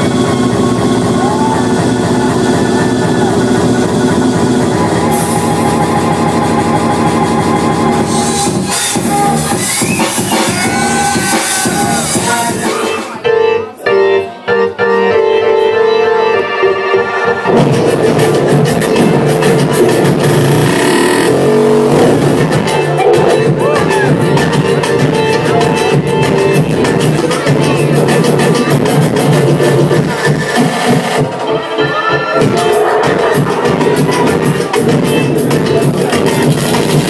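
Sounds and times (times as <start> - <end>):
dance music over sound system: 0.0 - 13.2, 17.0 - 37.0.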